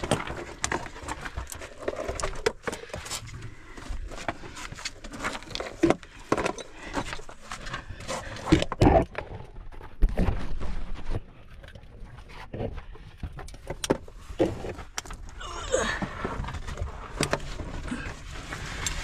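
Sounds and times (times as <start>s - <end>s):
stones scraping and crunching: 0.0s - 19.0s.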